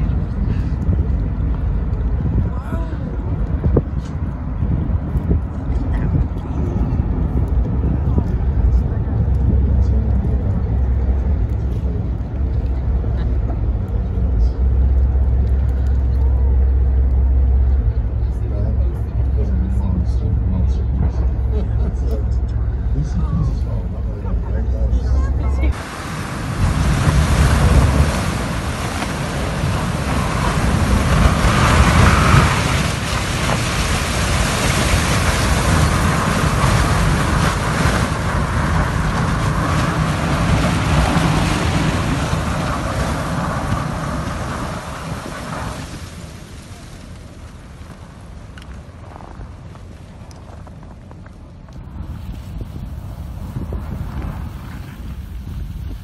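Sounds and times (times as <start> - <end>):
steady low rumble: 0.0 - 56.0.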